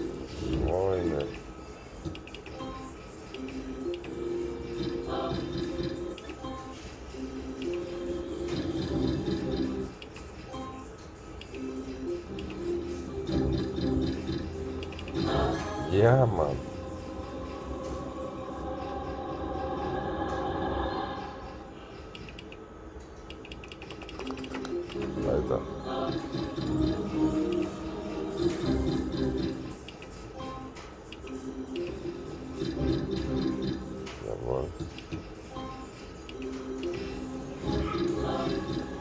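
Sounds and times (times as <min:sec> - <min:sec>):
slot machine electronic jingles: 0:13.2 - 0:16.2.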